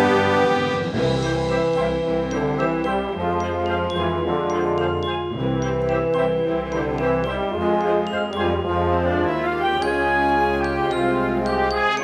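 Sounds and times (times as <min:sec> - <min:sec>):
wind band playing chords: 0:00.0 - 0:12.0.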